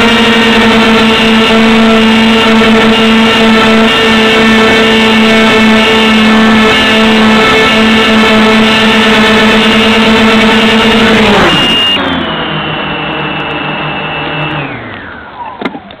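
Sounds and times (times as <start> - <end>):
multicopter propellers whining: 0.0 - 16.0.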